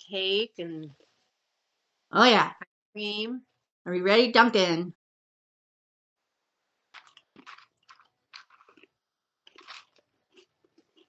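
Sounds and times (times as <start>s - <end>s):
cookies crunching as chewed: 6.9s - 11.0s.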